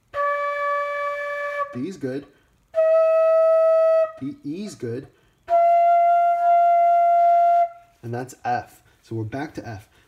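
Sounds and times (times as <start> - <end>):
flute long high note: 0.1 - 2.0, 2.7 - 4.4, 5.5 - 7.9.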